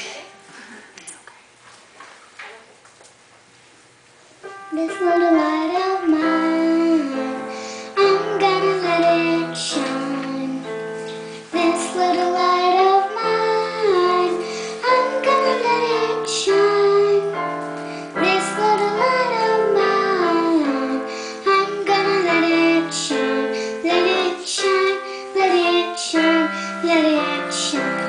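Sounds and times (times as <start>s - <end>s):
girl singing: 4.4s - 28.0s
held keyboard chords: 4.4s - 28.0s.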